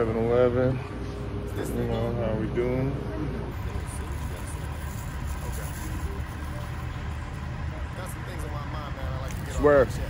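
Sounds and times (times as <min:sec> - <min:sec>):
low rumble of street noise: 0:00.0 - 0:10.0.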